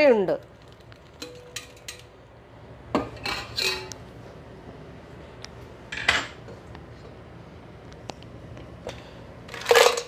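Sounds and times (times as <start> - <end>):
metal tongs clattering on countertop: 1.2 - 2.1, 3.1 - 4.0.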